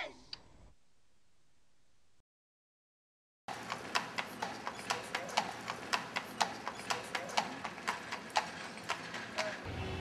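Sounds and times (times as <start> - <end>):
horse hooves clip-clopping on pavement: 3.5 - 9.7.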